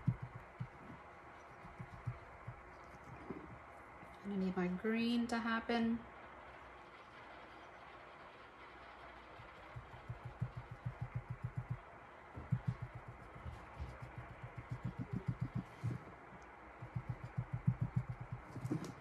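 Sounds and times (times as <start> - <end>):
sponge tapping steel tumbler: 0.0 - 3.5, 9.4 - 19.0.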